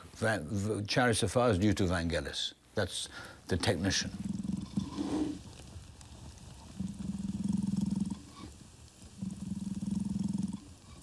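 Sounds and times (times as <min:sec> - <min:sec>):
deep rumbling throat growl: 0:04.0 - 0:05.4, 0:06.7 - 0:08.4, 0:09.1 - 0:11.0.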